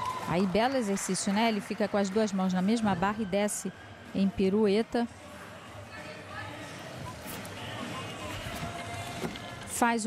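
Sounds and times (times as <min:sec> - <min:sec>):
faint crowd murmur: 0:02.6 - 0:09.8.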